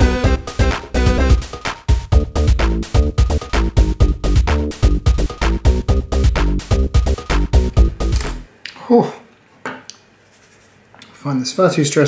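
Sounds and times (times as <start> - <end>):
electronic background music: 0.0 - 8.5.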